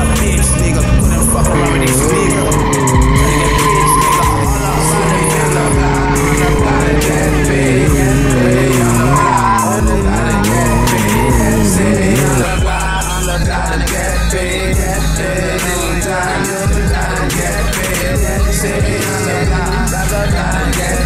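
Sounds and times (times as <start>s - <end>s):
tyre skidding and squealing: 0.0s - 13.6s, 15.4s - 21.0s
motorcycle engine high revs: 0.0s - 21.0s
music: 0.0s - 21.0s.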